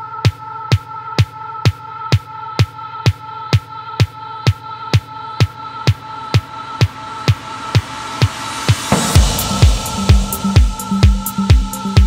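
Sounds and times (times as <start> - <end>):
kick drum beat: 0.0 - 12.0
rising noise sweep: 7.6 - 12.0
bass line: 8.9 - 12.0.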